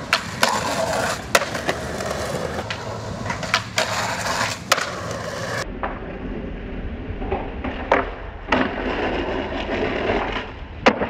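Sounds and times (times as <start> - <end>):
skateboard clacking on ground: 0.0 - 6.0, 7.2 - 11.0
skateboard wheels rolling on concrete: 0.0 - 11.0.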